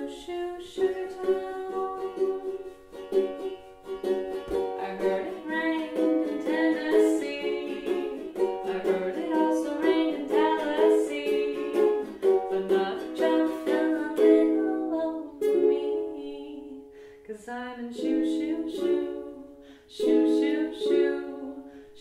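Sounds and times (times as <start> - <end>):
ukulele strumming: 0.0 - 16.9, 17.5 - 22.0.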